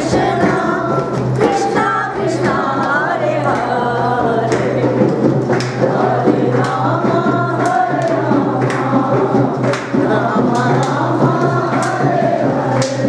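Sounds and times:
group singing in chorus: 0.0 - 13.0
sharp percussive hits: 0.0 - 13.0.

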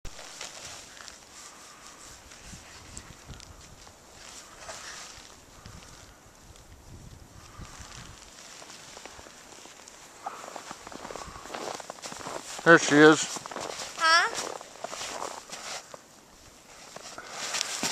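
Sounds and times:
child crunching through deep snow: 0.1 - 6.1, 7.4 - 17.9.

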